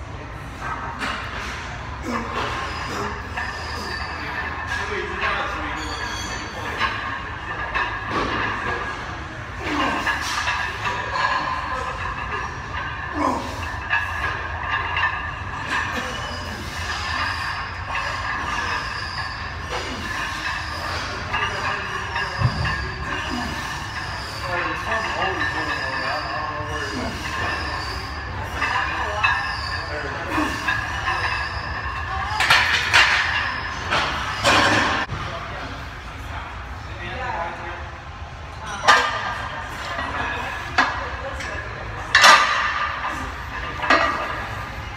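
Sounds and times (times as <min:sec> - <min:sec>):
voices: 0:00.0 - 0:44.9.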